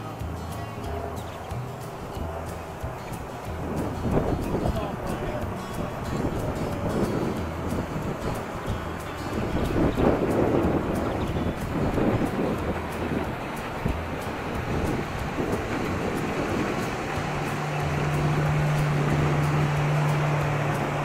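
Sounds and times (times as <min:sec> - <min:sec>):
motorboat engine drone: 0:00.0 - 0:21.0
water lapping against boat: 0:00.0 - 0:21.0
wind buffeting microphone: 0:00.0 - 0:21.0.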